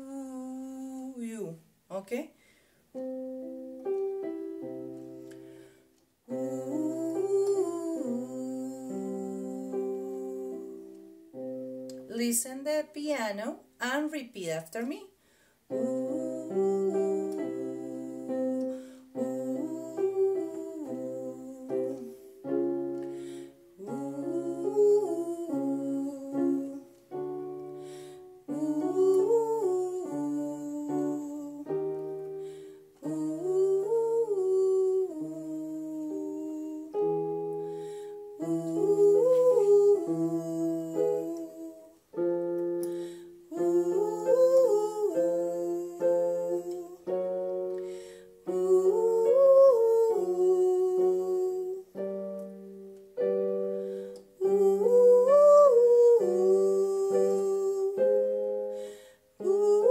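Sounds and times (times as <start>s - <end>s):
woman singing vocal warm-up: 0.0s - 2.2s, 6.3s - 15.0s, 15.7s - 59.9s
keyboard piano chords: 2.9s - 12.4s, 15.7s - 59.9s.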